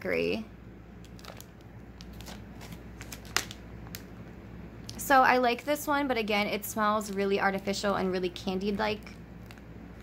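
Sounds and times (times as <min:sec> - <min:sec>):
plastic packaging crackling: 0:01.0 - 0:04.3, 0:09.4 - 0:10.0.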